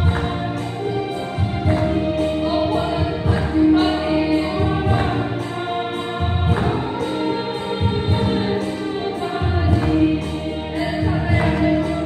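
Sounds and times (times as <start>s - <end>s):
women's choir singing gospel: 0.0s - 12.0s.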